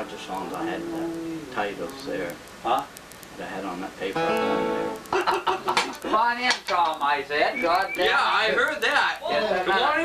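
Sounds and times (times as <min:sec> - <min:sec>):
acoustic guitar: 0:00.0 - 0:02.5, 0:04.1 - 0:06.0.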